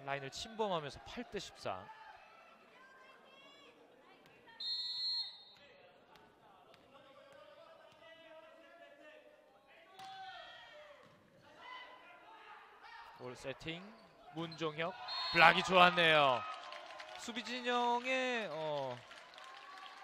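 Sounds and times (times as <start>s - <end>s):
voices in echoing gym hall: 0.0s - 16.0s
shrill whistle blast: 4.6s - 5.6s, 15.0s - 15.6s.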